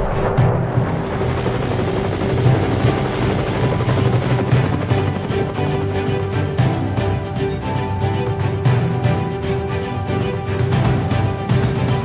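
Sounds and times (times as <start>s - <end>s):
helicopter engine whine: 0.3s - 8.8s
helicopter rotor beat: 0.4s - 12.0s.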